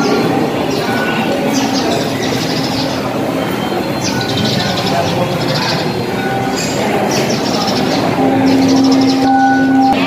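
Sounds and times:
crowd hubbub in a hall: 0:00.0 - 0:10.0.

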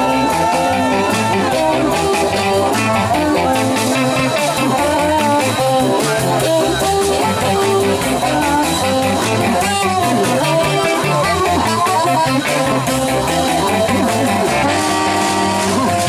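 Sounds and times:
amplified harmonica: 0:00.0 - 0:16.0
live band playing: 0:00.0 - 0:16.0.

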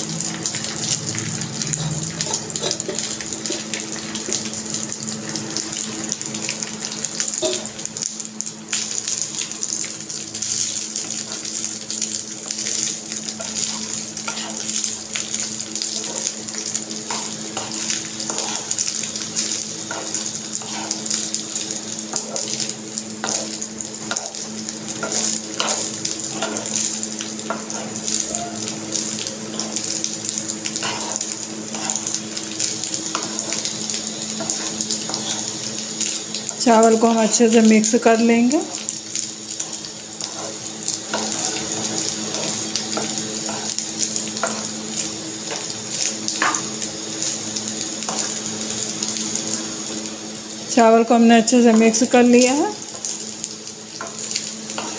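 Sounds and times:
spatula scraping and tapping pan: 0:46.4 - 0:46.7.

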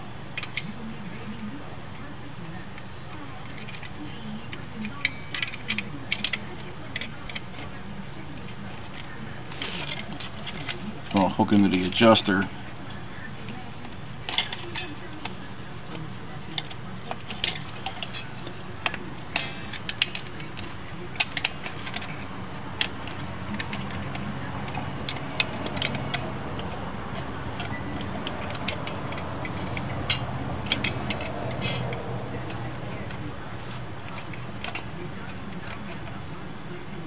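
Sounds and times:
steady low hum: 0:00.0 - 0:37.0
small metal parts clinking: 0:03.4 - 0:07.8, 0:08.4 - 0:12.5, 0:13.2 - 0:37.0.

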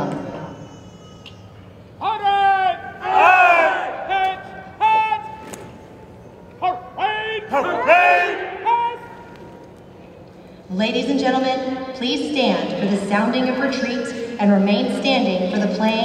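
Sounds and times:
shouted drill commands: 0:02.0 - 0:05.4, 0:06.6 - 0:09.2
voices repeating commands: 0:02.0 - 0:05.4, 0:06.5 - 0:09.3.

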